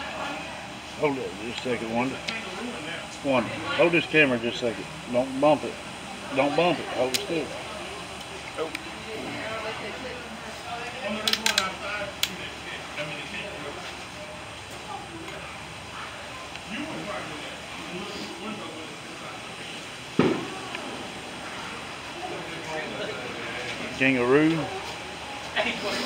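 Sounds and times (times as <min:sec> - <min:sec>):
steady hum: 0:00.0 - 0:26.0
sharp knock: 0:20.2 - 0:20.5.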